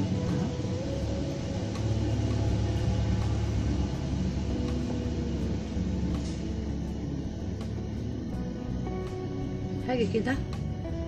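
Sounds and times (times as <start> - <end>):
faint background music: 0.0 - 11.0
low rumble: 0.0 - 11.0.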